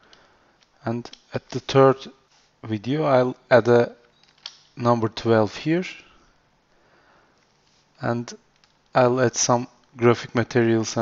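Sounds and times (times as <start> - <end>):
soft short hiss: 0.2 - 2.7.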